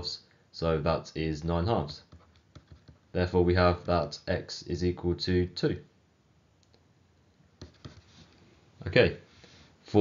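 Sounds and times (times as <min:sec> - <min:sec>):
stylus tapping on tablet: 0:02.1 - 0:03.1, 0:07.6 - 0:08.1.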